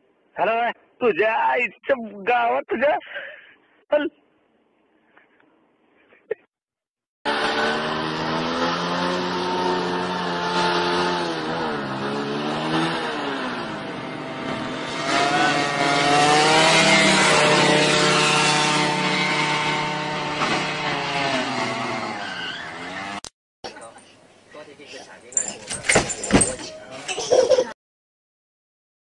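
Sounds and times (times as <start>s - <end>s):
motorcycle engine revving: 7.3s - 23.3s.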